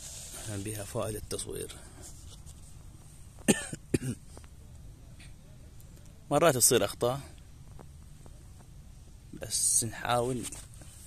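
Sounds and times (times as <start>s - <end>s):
person coughing: 3.4s - 4.2s.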